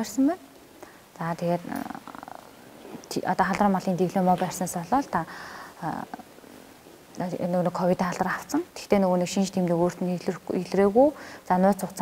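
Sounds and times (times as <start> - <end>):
woman talking: 0.0 - 0.5, 1.2 - 6.3, 7.1 - 12.0.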